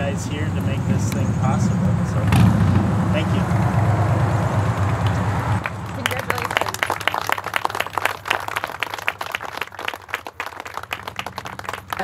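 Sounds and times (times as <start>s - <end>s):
small group applauding: 4.8s - 12.0s.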